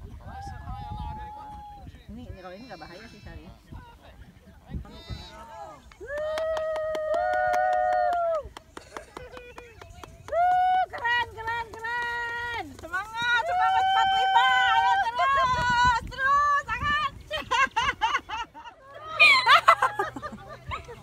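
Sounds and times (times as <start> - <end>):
people shouting and whooping: 0.2 - 1.9, 5.3 - 21.0.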